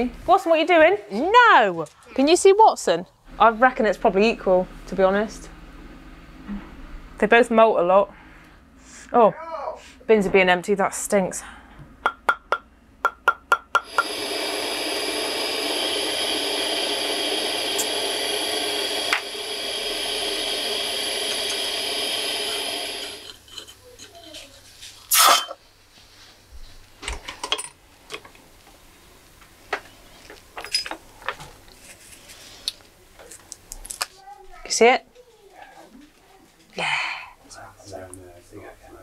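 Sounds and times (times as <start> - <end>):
gas torch hissing: 13.8 - 23.6, 25.1 - 25.6.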